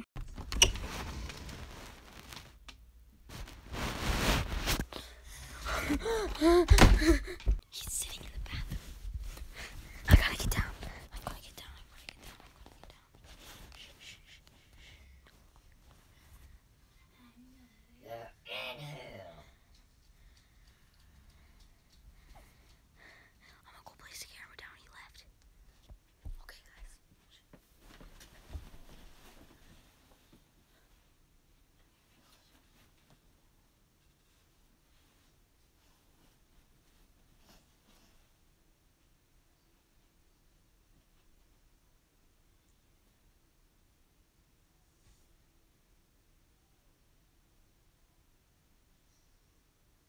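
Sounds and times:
microphone rubbing on cloth: 3.3s - 5.0s
person whispering: 7.7s - 8.9s, 10.0s - 14.8s, 17.0s - 19.6s, 23.4s - 25.3s, 26.2s - 27.5s.

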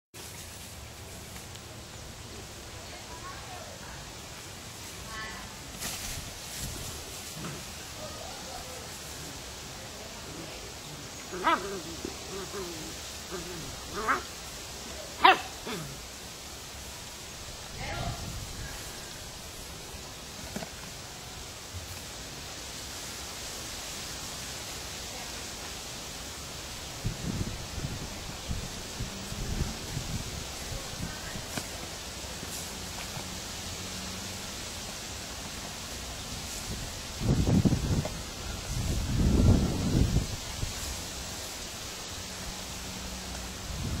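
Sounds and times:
steady hiss: 0.2s - 44.0s.

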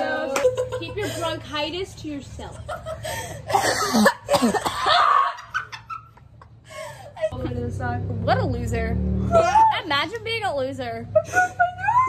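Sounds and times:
girl laughing: 2.5s - 7.6s, 11.1s - 12.0s
girl coughing: 3.5s - 5.1s.

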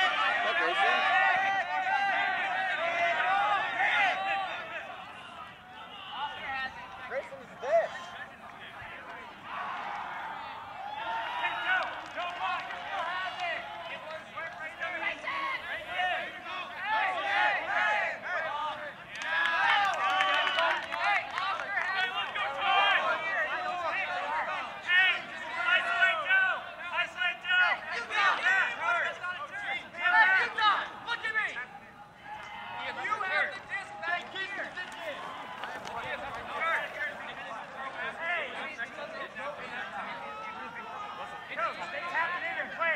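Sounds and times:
people talking and calling out: 0.0s - 42.9s.

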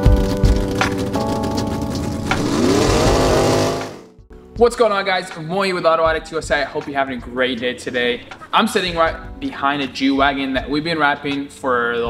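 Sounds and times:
car engine revving: 2.1s - 4.1s
held synth chords: 2.1s - 4.1s.

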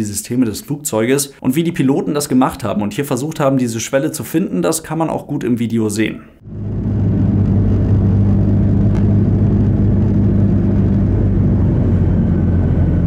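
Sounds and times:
airplane cabin engine drone: 6.4s - 13.0s.

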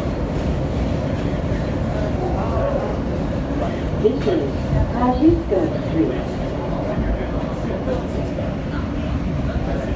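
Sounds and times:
train wheels rumbling on rails: 0.0s - 9.9s.

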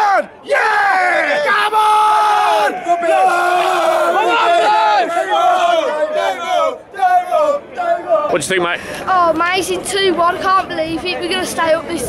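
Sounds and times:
fans shouting and chanting: 0.0s - 8.6s.

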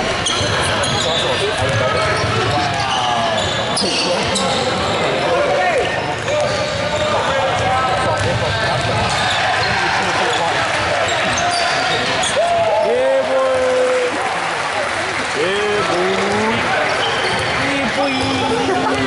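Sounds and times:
shoes squeaking on court: 0.2s - 5.1s, 8.3s - 12.4s, 16.8s - 19.0s.

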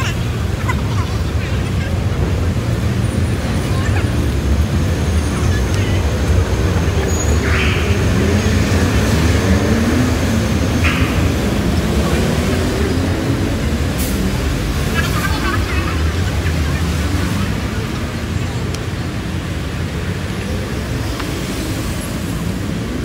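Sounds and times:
faint voices: 0.0s - 23.0s
traffic rumble: 0.0s - 23.0s.

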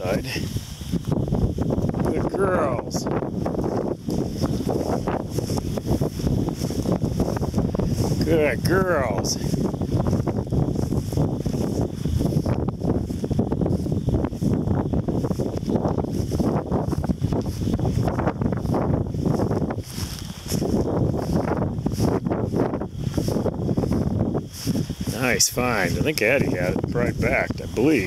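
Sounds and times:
dry grass rustling: 0.0s - 28.0s
wind buffeting microphone: 0.0s - 28.0s.

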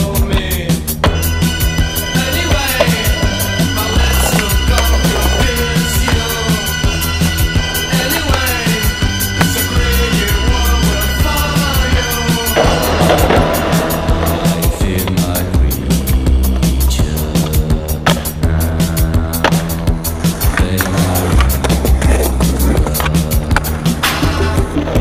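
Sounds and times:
music with deep bass: 0.0s - 25.0s
skateboard wheels rolling on pavement: 1.0s - 17.5s, 19.0s - 25.0s
skateboard clacks: 2.4s - 11.8s, 17.4s - 18.4s, 19.4s - 25.0s.

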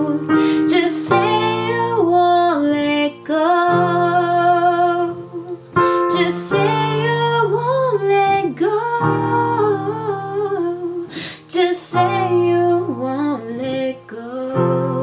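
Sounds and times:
keyboard accompaniment: 0.0s - 15.0s.

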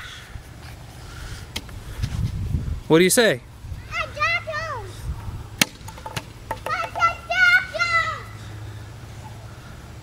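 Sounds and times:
toddler calling out: 6.7s - 8.4s.

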